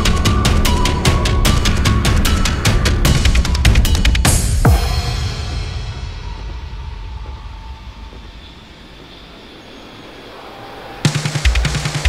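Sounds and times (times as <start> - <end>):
rumbling electronic noise texture: 0.0 - 10.5.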